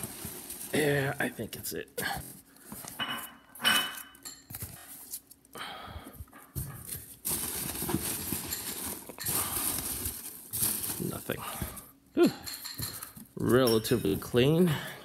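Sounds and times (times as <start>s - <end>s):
foam packing peanuts rustling: 0.0s - 1.6s, 6.8s - 11.8s.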